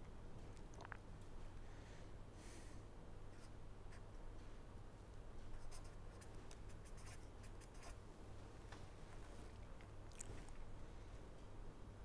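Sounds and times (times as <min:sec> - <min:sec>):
steady low hum: 0:00.0 - 0:12.0
pen scratching on paper: 0:05.6 - 0:08.0.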